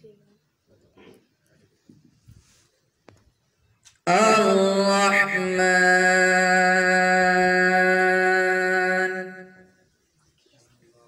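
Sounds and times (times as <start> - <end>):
man reciting melodically: 4.1 - 9.8.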